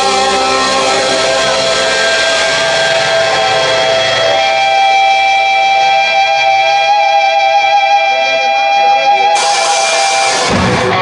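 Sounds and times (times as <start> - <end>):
bass guitar: 0.0 - 11.0
distorted electric guitar: 0.0 - 11.0.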